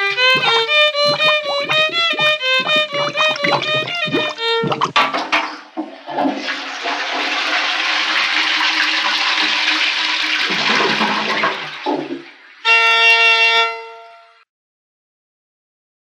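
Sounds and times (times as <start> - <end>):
toilet flushing: 0.0 - 13.8
steady horn-like tone: 12.6 - 14.4.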